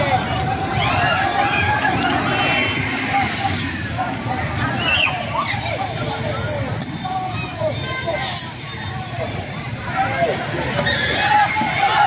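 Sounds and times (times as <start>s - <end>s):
people talking and calling: 0.0s - 12.0s.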